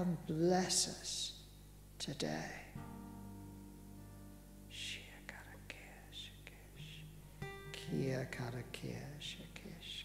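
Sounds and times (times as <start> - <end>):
low steady hum: 0.0 - 10.0
faint whispering: 2.0 - 2.8, 4.7 - 7.1, 7.7 - 10.0.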